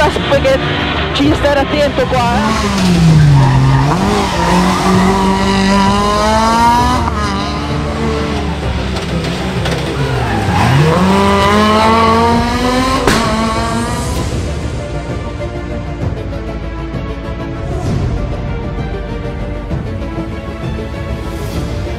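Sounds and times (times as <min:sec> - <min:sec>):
rally car engine revving: 0:00.0 - 0:15.2.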